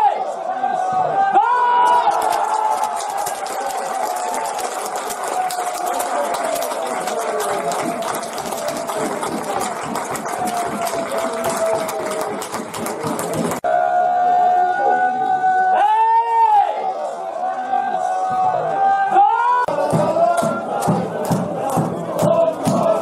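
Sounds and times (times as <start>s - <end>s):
spectators clapping: 1.7s - 13.7s, 19.7s - 23.0s.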